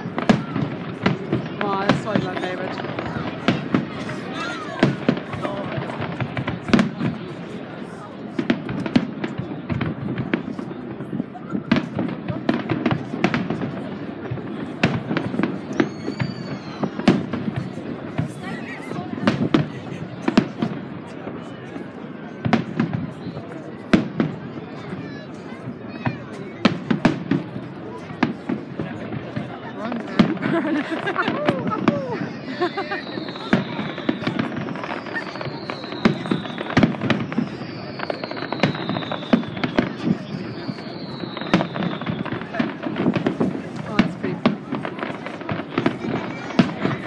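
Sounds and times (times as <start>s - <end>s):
fireworks bangs and crackles: 0.0s - 47.0s.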